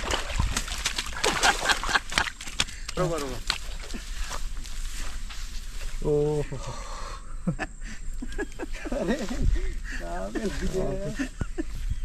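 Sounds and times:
man laughing and exclaiming: 7.4s - 11.7s.

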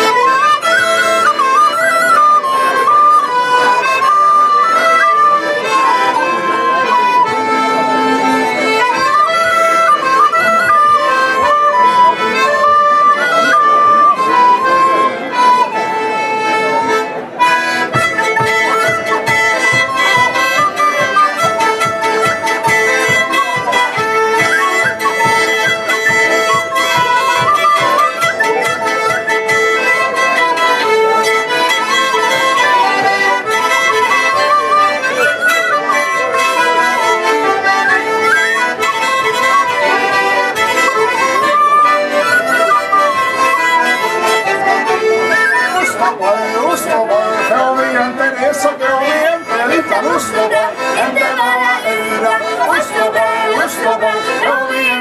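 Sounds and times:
end-blown flute melody: 0.0s - 46.3s
button accordion chords: 0.0s - 55.0s.

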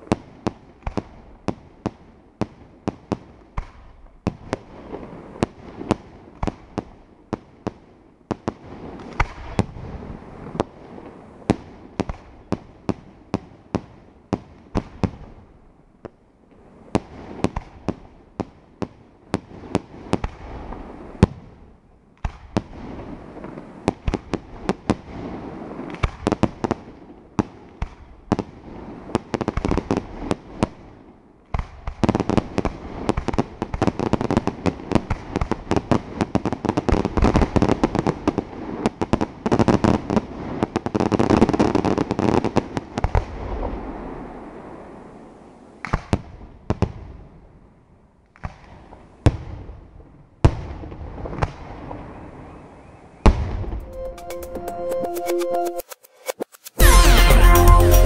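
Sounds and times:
crackling hiss of falling stars: 19.4s - 49.2s
fireworks shells bursting: 53.6s - 58.0s.

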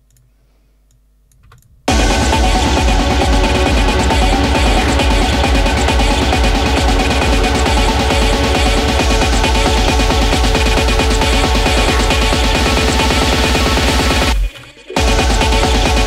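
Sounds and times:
techno track with kick drum: 1.9s - 16.0s.

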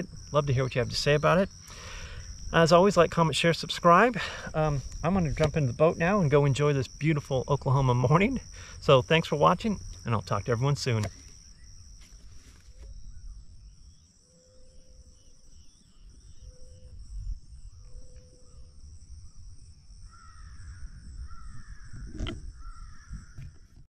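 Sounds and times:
crickets droning: 0.0s - 23.9s
crow cawing: 20.1s - 21.9s, 22.6s - 23.4s.

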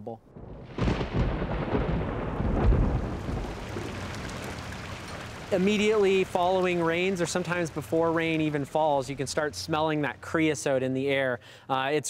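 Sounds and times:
thunder rumbling: 0.2s - 9.2s
falling rain: 0.2s - 10.7s.

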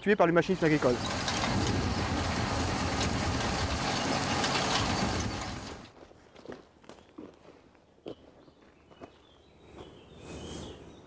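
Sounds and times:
broad rushing noise: 0.5s - 5.9s
engine running steadily: 0.5s - 5.9s.

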